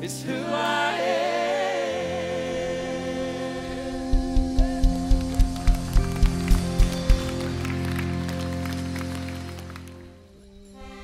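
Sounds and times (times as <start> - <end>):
sustained accordion-like tones: 10.1 - 11.0.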